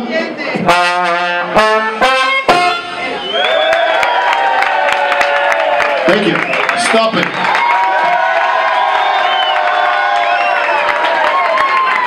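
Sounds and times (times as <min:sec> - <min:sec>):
crowd cheering and clapping: 0:02.8 - 0:12.0
crowd holding long shouts: 0:03.1 - 0:06.2, 0:07.4 - 0:12.0.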